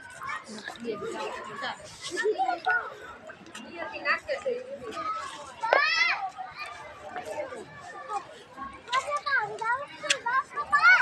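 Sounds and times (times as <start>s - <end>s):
children's voices at play: 0.0s - 11.0s.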